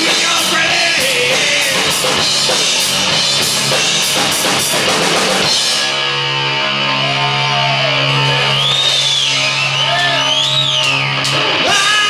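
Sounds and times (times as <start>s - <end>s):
distorted guitar and bass chord: 0.0s - 12.0s
high guitar tones swooping: 0.0s - 12.0s.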